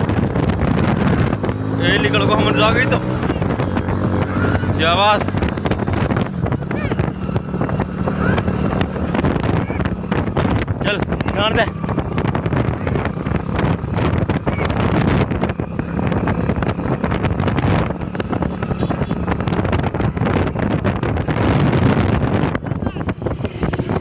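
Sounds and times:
motorcycle engine running: 0:00.0 - 0:24.0
wind buffeting microphone: 0:00.0 - 0:24.0.

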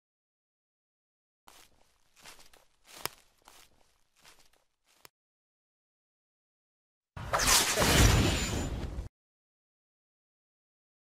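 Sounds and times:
footsteps through grassy undergrowth: 0:01.5 - 0:05.1.

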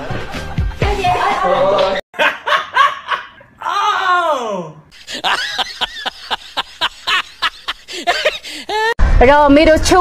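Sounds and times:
man laughing hard: 0:02.2 - 0:03.5, 0:04.9 - 0:09.0.

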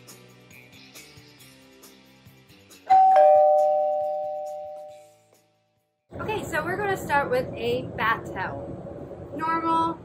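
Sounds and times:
two-note ding-dong chime: 0:02.9 - 0:05.0.

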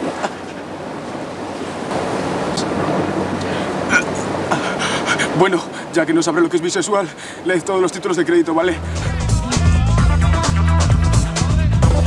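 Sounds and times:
sea surf rushing: 0:00.0 - 0:12.0
wind: 0:00.0 - 0:12.0.

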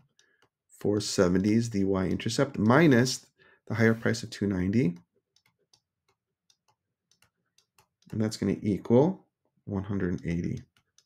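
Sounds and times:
stylus tapping on tablet screen: 0:04.8 - 0:08.8.

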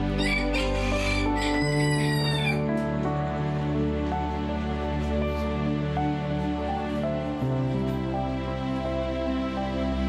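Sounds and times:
soft slow background music: 0:00.0 - 0:10.0
rooster crowing: 0:00.1 - 0:02.7.

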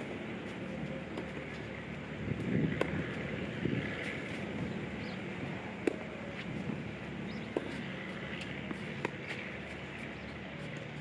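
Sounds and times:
tennis ball hitting racket: 0:02.3 - 0:05.1, 0:05.7 - 0:06.7, 0:07.3 - 0:10.2.

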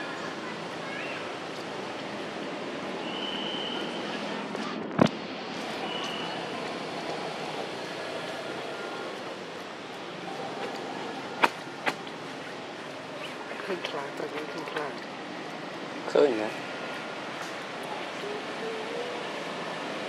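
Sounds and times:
faint voices: 0:00.0 - 0:20.0
outdoor background noise: 0:00.0 - 0:20.0.

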